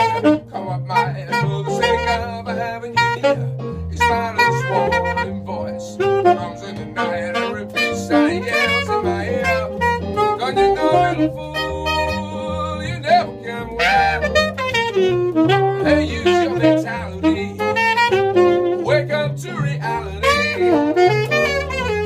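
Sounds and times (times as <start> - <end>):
electric keyboard chords: 0.0 - 22.0
jazz saxophone solo: 0.0 - 22.0
stepping bass line: 0.0 - 22.0.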